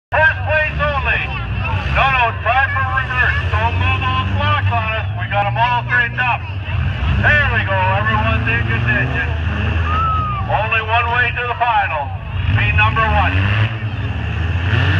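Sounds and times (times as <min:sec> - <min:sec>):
engines idling: 0:00.1 - 0:14.9
person talking loudly: 0:00.2 - 0:06.4.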